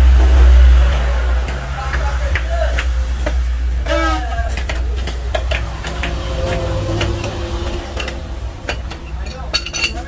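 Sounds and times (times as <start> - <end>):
metal clicks of wrenches: 7.0 - 10.0.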